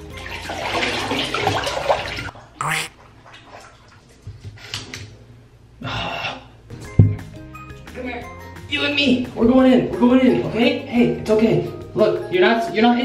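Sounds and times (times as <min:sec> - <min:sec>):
bathwater sloshing and splashing: 0:00.0 - 0:04.6.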